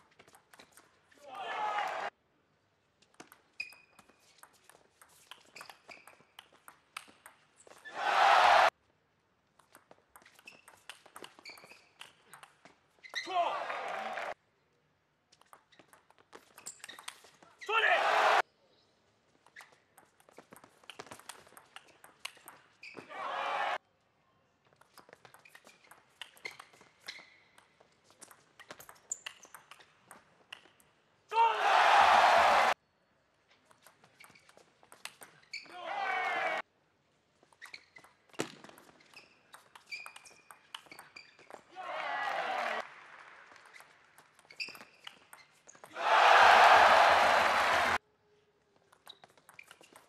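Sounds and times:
crowd shouting and cheering: 1.3 - 2.1, 7.9 - 8.7, 13.3 - 14.4, 17.7 - 18.4, 23.1 - 23.8, 31.3 - 32.8, 35.8 - 36.6, 41.8 - 42.8, 45.9 - 48.0
table tennis ball hitting paddles: 3.0 - 8.0, 9.5 - 13.4, 15.4 - 17.4, 19.4 - 23.1, 24.7 - 30.9, 33.6 - 35.5, 37.4 - 47.5, 48.9 - 50.0.

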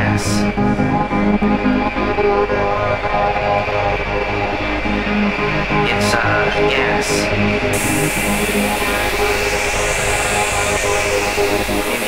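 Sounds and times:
dense synth texture: 0.0 - 12.0
high hiss: 4.2 - 12.0.

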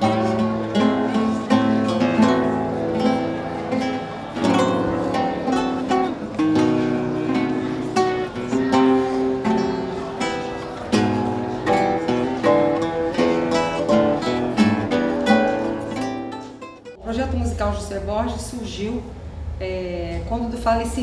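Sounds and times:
acoustic guitars playing: 0.0 - 17.8.

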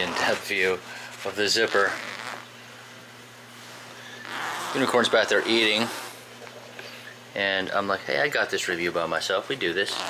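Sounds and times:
steady low hum with hiss: 0.0 - 10.0.

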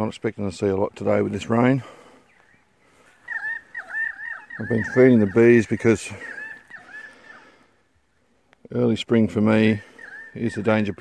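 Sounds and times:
high animal calls: 3.0 - 7.8, 9.7 - 11.0.

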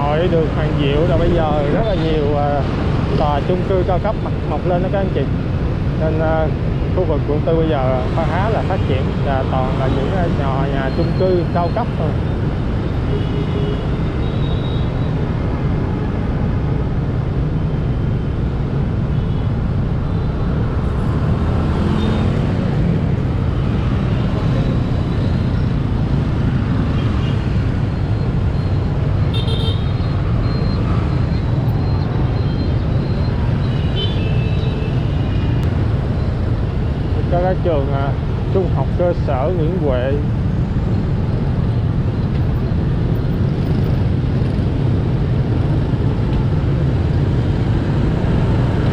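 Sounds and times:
motorbike engine and road noise: 0.0 - 48.9
surrounding traffic: 0.0 - 48.9.

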